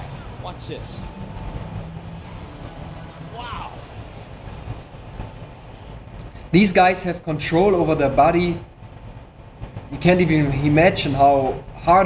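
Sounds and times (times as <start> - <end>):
background music with low bass notes: 0.0 - 8.4.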